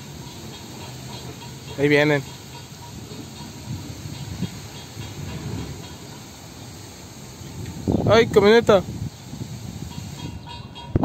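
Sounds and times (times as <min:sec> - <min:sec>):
constant hiss: 0:00.0 - 0:11.0
diesel locomotives rumbling: 0:00.0 - 0:11.0.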